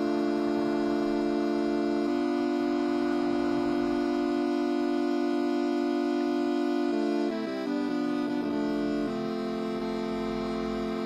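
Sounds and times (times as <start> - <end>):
synthesizer chords: 0.0 - 11.0.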